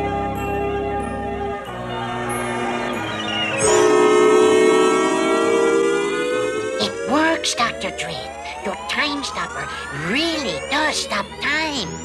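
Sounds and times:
electronic siren-like ray effect: 0:03.6 - 0:12.0.

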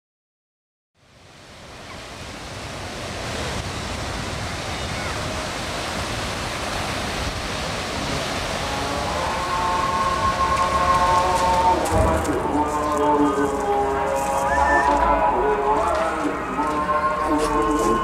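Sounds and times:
waves washing onto sand: 0:01.0 - 0:18.0
sustained tones: 0:08.7 - 0:18.0.

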